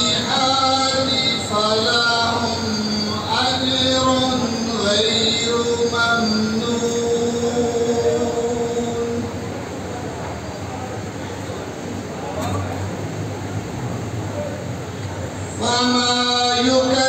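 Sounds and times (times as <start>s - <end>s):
man reciting melodically over pa: 0.0s - 9.8s, 15.4s - 17.0s.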